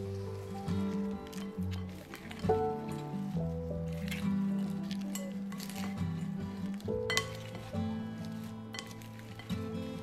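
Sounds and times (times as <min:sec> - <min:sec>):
wet squish of salad being tossed: 0:00.0 - 0:09.9
background music with low notes: 0:00.0 - 0:10.0.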